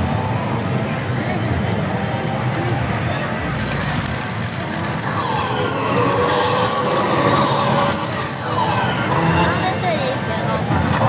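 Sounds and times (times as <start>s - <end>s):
din of gaming parlour: 0.0s - 11.0s.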